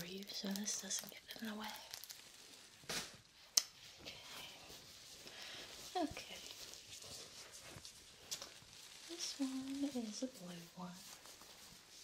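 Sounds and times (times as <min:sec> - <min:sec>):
fabric rustling: 0:00.0 - 0:12.0.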